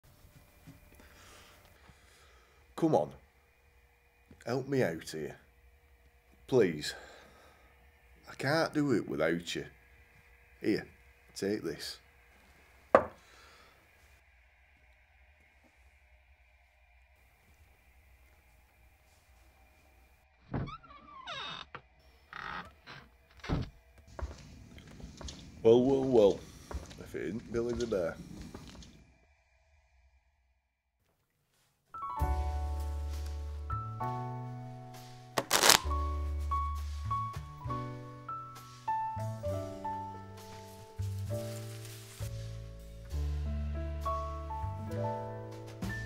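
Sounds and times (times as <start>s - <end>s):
faint steady hum: 0.1s - 30.5s
background music: 32.0s - 46.0s
playing cards riffle-shuffled: 35.4s - 36.1s, 40.5s - 42.7s.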